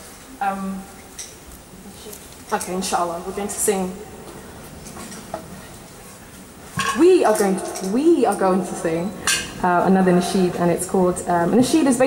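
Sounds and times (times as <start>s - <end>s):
woman speaking: 0.4s - 1.0s, 1.9s - 4.0s, 7.0s - 12.0s
clatter of dishes and cutlery: 6.8s - 8.0s
dish clink: 6.8s - 8.5s.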